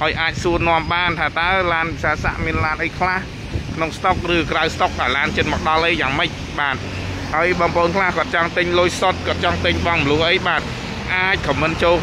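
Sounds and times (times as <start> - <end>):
person speaking: 0.0 - 12.0.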